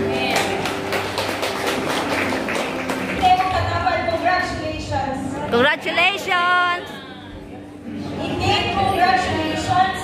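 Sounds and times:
congregation applauding: 0.0 - 3.8.

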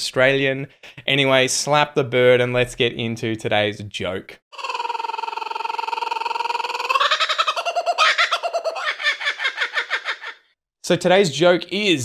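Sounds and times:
kookaburra call: 4.6 - 10.3.

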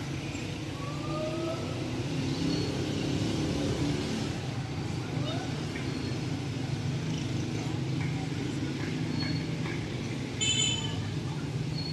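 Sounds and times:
road traffic rumble: 0.0 - 11.9.

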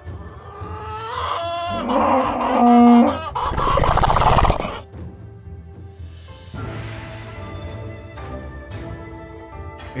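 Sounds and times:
animal clucking and crowing: 0.2 - 4.8.

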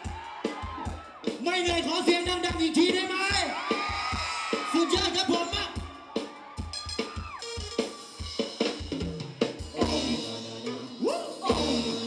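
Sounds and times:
live band drum beat: 0.0 - 12.0
bass line: 9.7 - 12.0.

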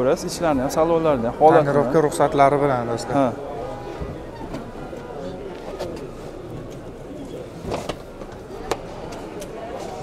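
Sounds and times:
indistinct background voices: 0.0 - 10.0
outdoor background noise: 0.0 - 10.0.

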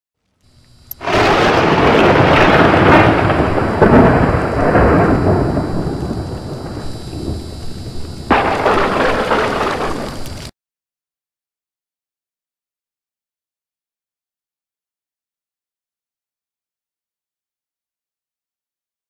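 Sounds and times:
rain-like hiss: 0.4 - 10.5
sharp thunder crack: 1.0 - 10.4
thunder rumble: 1.0 - 10.5.

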